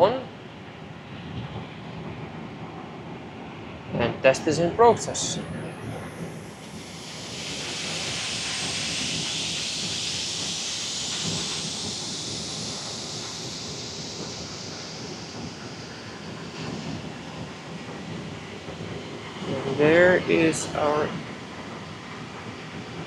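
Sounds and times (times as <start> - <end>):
jet engine whine rising: 0.0 - 23.0
rush of air: 4.7 - 23.0.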